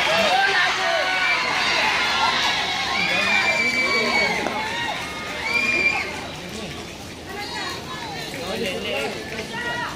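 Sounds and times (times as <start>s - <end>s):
children shouting: 0.0s - 6.4s
children chattering: 0.0s - 9.9s.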